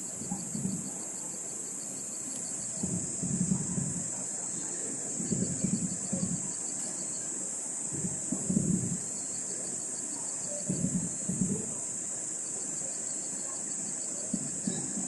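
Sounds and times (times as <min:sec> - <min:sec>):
high-pitched hiss: 0:00.0 - 0:15.0
low muffled rumbles: 0:00.1 - 0:01.0, 0:02.6 - 0:04.3, 0:10.7 - 0:11.9, 0:14.3 - 0:15.0.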